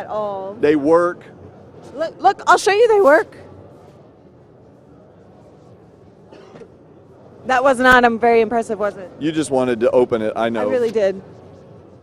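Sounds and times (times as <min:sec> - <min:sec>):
exhibition hall hum: 0:00.0 - 0:12.0.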